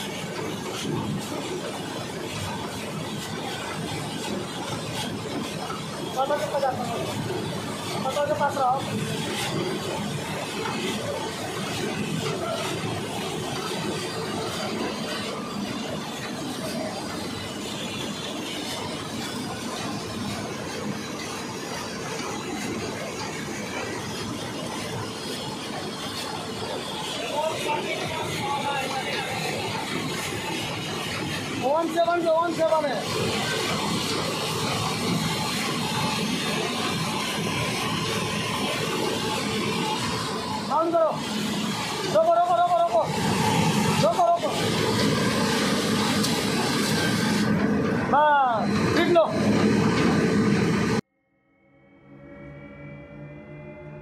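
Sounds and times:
centrifuge running: 0.0 - 51.0, 51.6 - 54.0.

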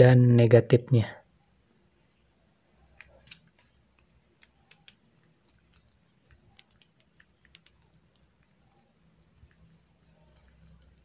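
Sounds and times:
small clicks and ticks: 1.4 - 11.0.

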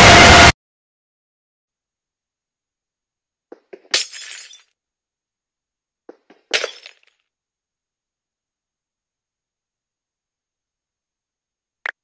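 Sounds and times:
glass breaking: 3.6 - 4.7, 6.1 - 7.2.

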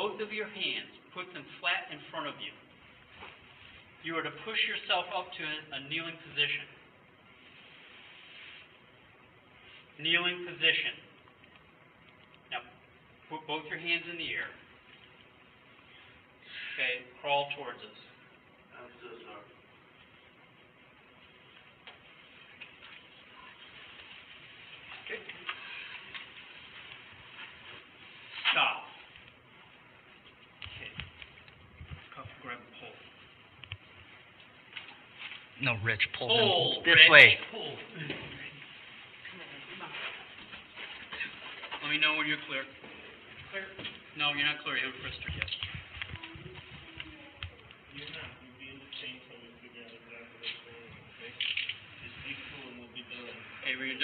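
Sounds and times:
faint steady hiss: 0.0 - 54.0.

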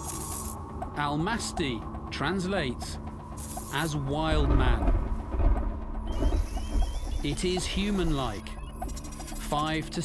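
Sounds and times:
low hum: 0.0 - 10.0
deep steady rumble: 0.1 - 10.0.

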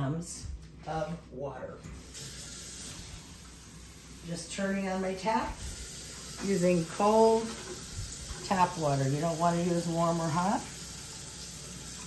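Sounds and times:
tap water running: 1.8 - 12.0.

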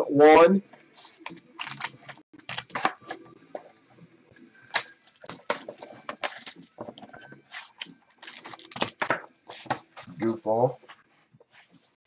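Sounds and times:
trading cards clicking and snapping: 1.2 - 3.2.

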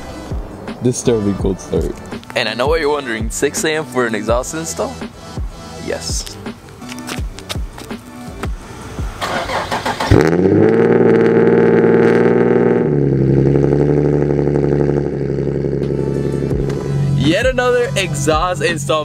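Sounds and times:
car engine cold starting: 8.8 - 16.8.

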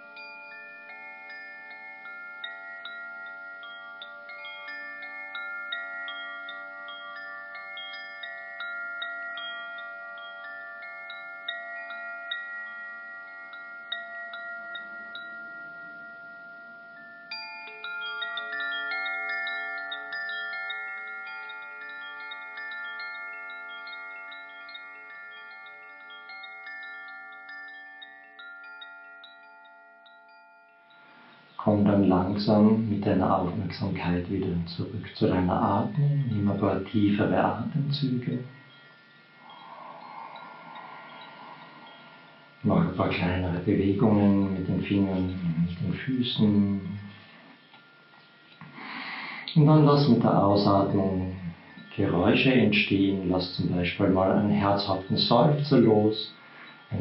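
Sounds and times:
wind chimes ringing: 0.0 - 57.0.

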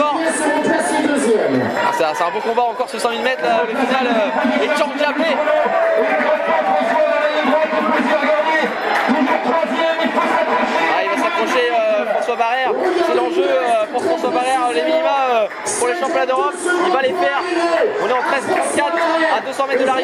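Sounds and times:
crowd chatter: 0.0 - 20.0
men talking: 0.0 - 20.0.

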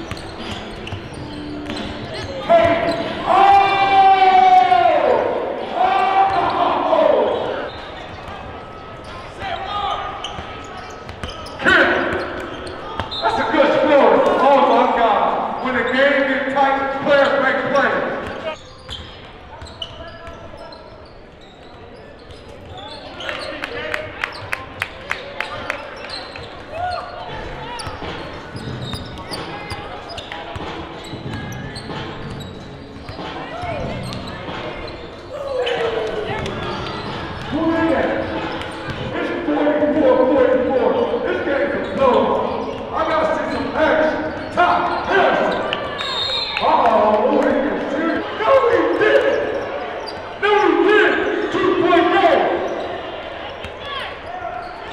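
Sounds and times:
voices in echoing gym: 0.0 - 54.9.

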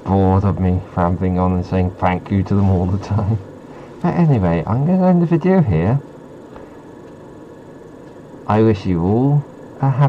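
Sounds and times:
faint hum: 0.0 - 10.0
low hiss: 0.0 - 10.0.

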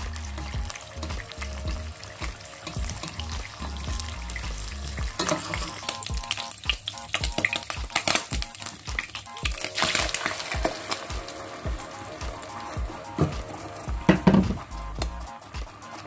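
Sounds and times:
meat sizzling in frying pan: 0.0 - 16.0.

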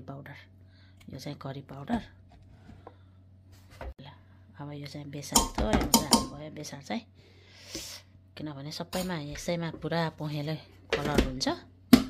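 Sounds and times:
spoon knocking on metal pot: 5.3 - 6.4.

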